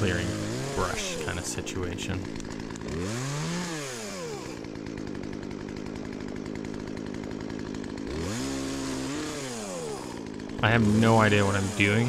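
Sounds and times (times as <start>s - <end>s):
chainsaw revving and idling: 0.0s - 12.0s.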